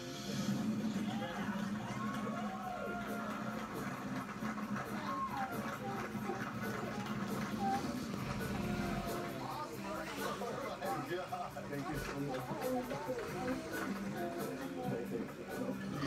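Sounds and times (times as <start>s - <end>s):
television music: 0.0s - 16.0s
indistinct voices: 4.8s - 16.0s.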